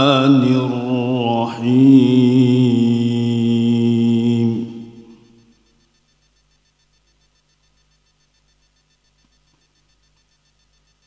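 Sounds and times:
man reciting melodically: 0:00.0 - 0:05.3.

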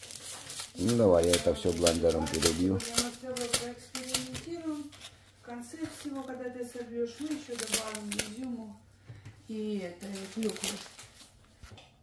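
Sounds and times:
person speaking: 0:00.7 - 0:08.8.

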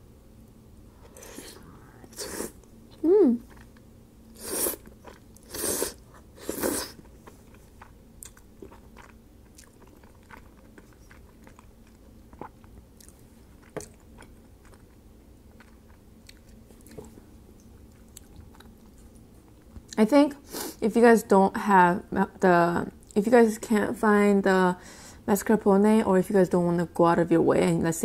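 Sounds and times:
soft chewing: 0:01.0 - 0:20.0
person slurping noodles: 0:01.2 - 0:02.6, 0:04.4 - 0:07.0.

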